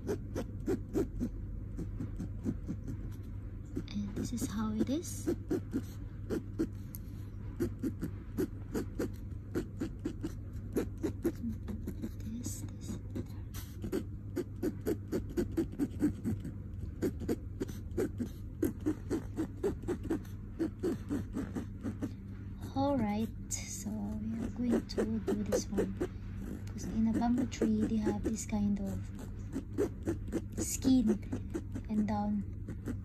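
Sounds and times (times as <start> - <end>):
ballpoint pen scratching on canvas: 7.6 - 23.3, 24.0 - 33.0.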